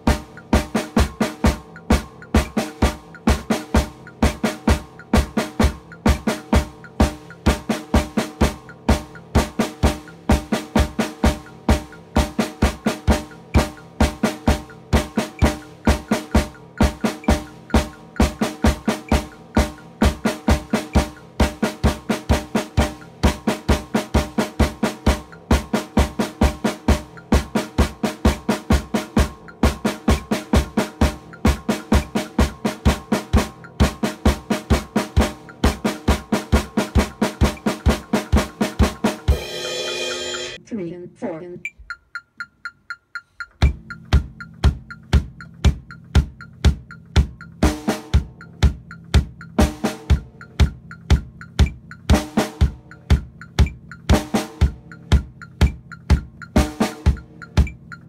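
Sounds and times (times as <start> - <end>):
drum kit groove: 0.0 - 58.0.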